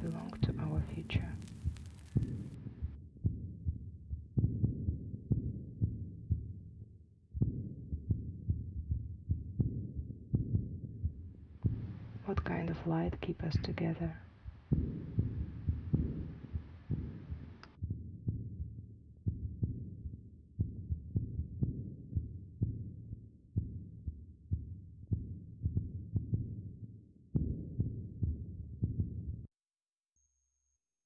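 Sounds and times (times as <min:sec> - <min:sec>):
faint hiss: 0:00.0 - 0:02.6
low thumping pulse: 0:00.0 - 0:26.8, 0:27.4 - 0:29.5.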